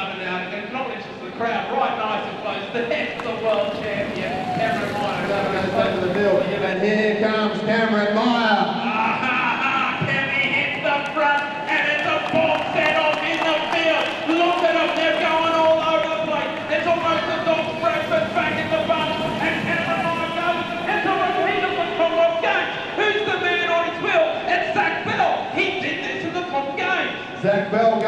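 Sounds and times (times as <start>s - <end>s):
voices talking: 0.0s - 28.0s.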